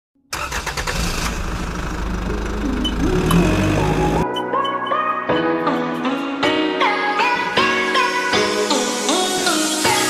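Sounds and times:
engine running: 0.3 - 4.2
rising musical notes: 2.0 - 4.8.

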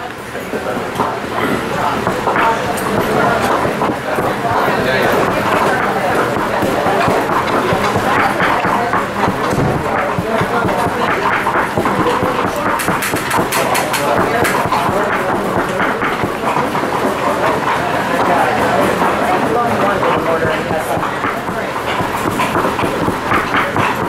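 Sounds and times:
people talking at once: 0.0 - 24.0
sharp kitchen knocks: 1.3 - 16.8, 19.6 - 24.0.

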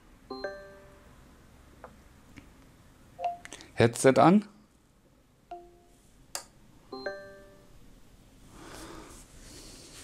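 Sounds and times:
smart speaker low beep: 0.3 - 1.0, 3.2 - 3.5.

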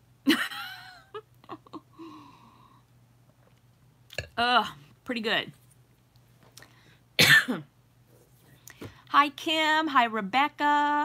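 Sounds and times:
woman coughing: 7.2 - 7.7.

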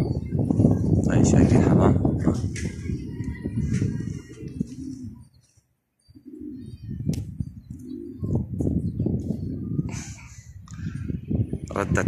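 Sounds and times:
low rumble of microphone noise: 0.0 - 5.4, 6.6 - 12.0
pigeons cooing: 2.6 - 11.6.

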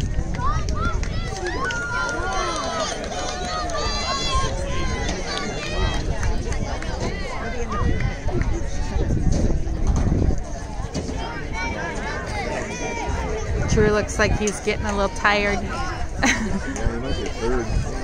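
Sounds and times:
spectators talking: 0.0 - 18.0.

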